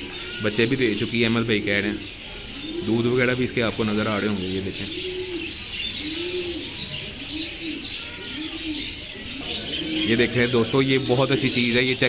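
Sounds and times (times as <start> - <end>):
doves cooing: 0.0 - 12.0
small birds chirping: 0.0 - 12.0.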